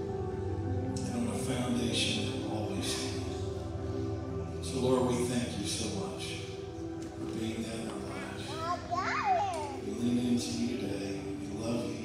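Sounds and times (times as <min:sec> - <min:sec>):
soft held music chords: 0:00.0 - 0:12.0
small child babbling: 0:08.4 - 0:09.9.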